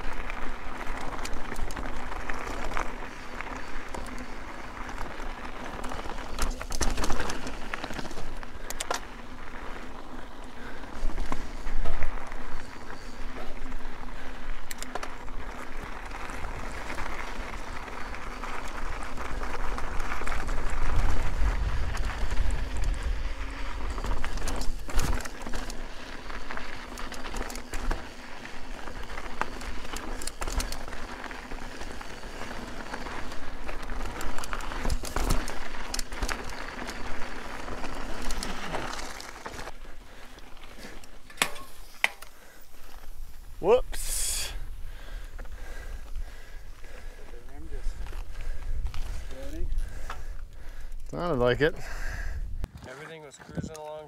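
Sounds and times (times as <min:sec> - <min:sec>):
bike clicks and rattles: 0:00.0 - 0:43.6, 0:44.7 - 0:54.0
bike tyres on dirt and gravel: 0:00.0 - 0:54.0
wind rumbling on microphone: 0:15.2 - 0:38.6, 0:51.8 - 0:52.8.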